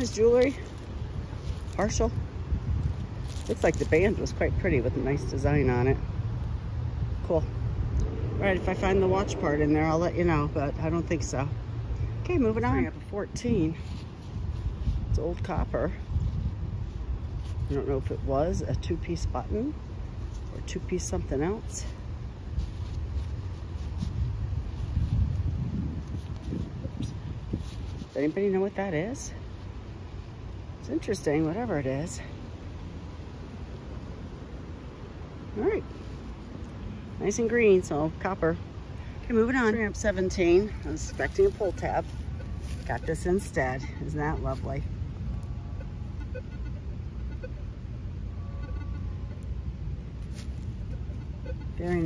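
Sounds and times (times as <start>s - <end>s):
wind buffeting microphone: 0.0s - 28.2s
low outdoor rumble: 0.0s - 52.0s.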